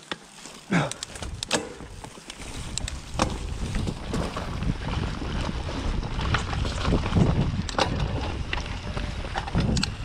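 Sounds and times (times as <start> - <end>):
bike knocking and rattling: 0.0 - 10.0
wind buffeting microphone: 1.1 - 10.0
tyres rumbling on dirt: 3.0 - 10.0.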